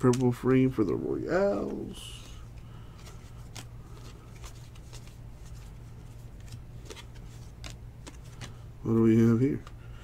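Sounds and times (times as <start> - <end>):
cards being flipped by hand: 0.0 - 9.9
steady low hum: 0.0 - 10.0.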